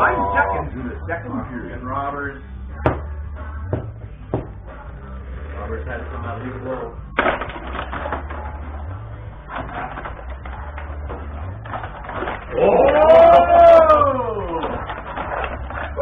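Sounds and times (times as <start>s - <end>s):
table hockey rods clicking: 9.5s - 16.0s.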